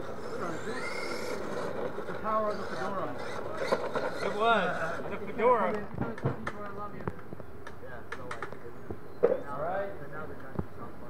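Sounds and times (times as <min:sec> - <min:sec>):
people talking: 0:00.1 - 0:00.8, 0:02.0 - 0:11.0.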